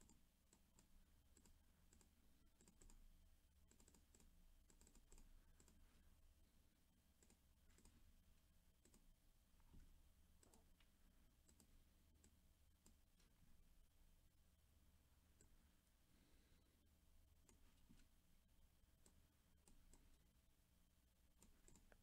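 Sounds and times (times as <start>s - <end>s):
keyboard and mouse clicks: 0.0s - 5.9s, 7.2s - 8.0s, 8.8s - 9.7s, 10.4s - 13.4s, 17.4s - 18.1s, 21.3s - 22.0s.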